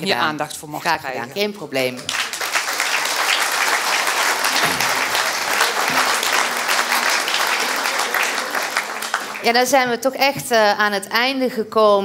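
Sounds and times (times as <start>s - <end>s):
audience applause: 2.0s - 9.9s.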